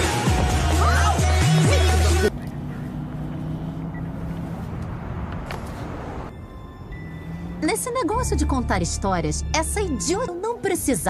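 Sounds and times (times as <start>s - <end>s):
loud film music: 0.0s - 2.3s.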